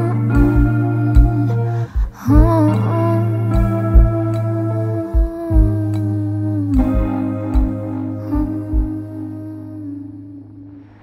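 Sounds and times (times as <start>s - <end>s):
soft low drum hits: 0.4s - 2.7s, 3.5s - 4.3s, 5.1s - 6.0s, 6.8s - 7.7s, 8.4s - 9.0s.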